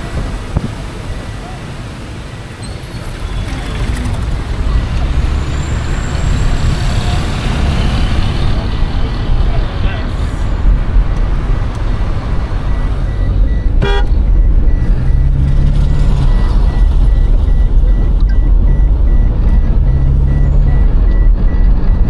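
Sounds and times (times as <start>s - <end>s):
vehicle engine and road noise: 0.0s - 22.0s
short horn toot: 13.8s - 14.1s.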